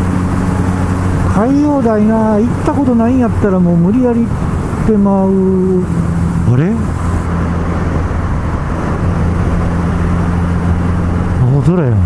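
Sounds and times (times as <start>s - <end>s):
motorcycle engine cruising: 0.0s - 12.0s
road and wind noise: 0.0s - 12.0s.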